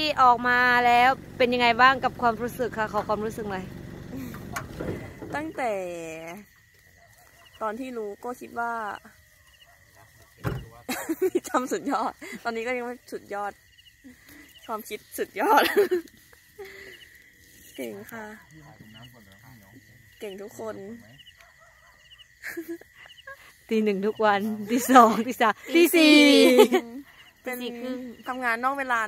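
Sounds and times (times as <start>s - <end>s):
woman speaking: 0.0s - 3.7s, 5.2s - 6.5s, 7.6s - 9.1s, 11.2s - 13.6s, 14.6s - 16.0s, 17.7s - 18.5s, 20.2s - 21.1s, 23.3s - 29.0s
person talking: 23.7s - 29.0s.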